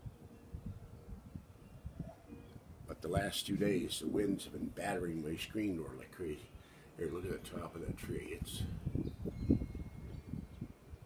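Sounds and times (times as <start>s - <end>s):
wind buffeting microphone: 0.0s - 5.9s, 7.0s - 11.0s.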